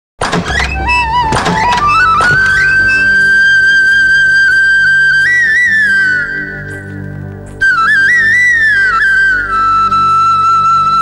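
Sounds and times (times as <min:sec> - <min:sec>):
wavering flute-like melody: 0:00.5 - 0:11.0.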